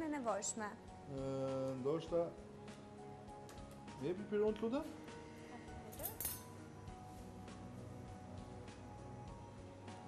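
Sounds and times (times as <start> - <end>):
soft background music: 0.0 - 10.0
kitchenware clinking: 6.0 - 6.5.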